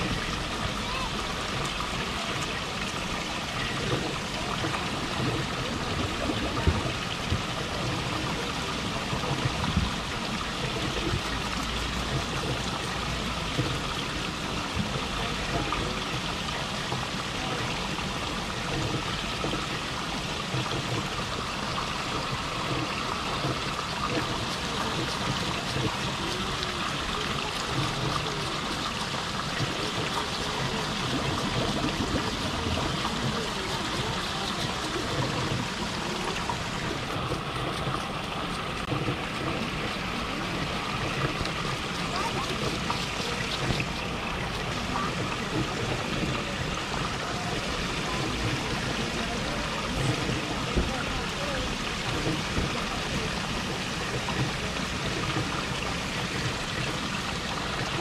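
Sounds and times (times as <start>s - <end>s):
waterfall splashing into pond: 0.0s - 58.0s.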